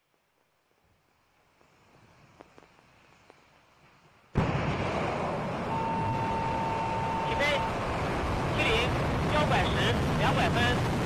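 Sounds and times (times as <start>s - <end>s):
rocket engines rumbling: 2.7s - 11.0s
steady beep: 5.7s - 7.9s.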